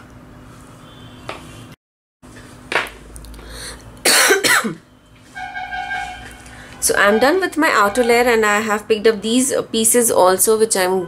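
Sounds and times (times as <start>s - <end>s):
woman coughing: 4.0s - 4.8s.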